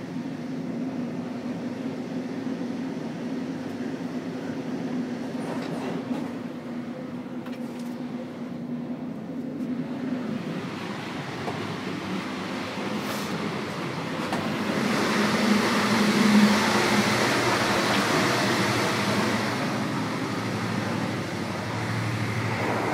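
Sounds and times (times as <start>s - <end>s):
train coach rolling rumble: 0.0s - 22.9s.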